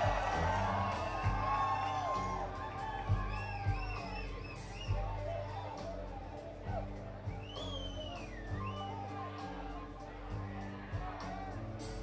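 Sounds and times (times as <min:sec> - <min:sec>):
drum hits: 0:00.0 - 0:04.2
electric guitars bending notes: 0:00.0 - 0:12.0
sustained bass: 0:00.0 - 0:12.0.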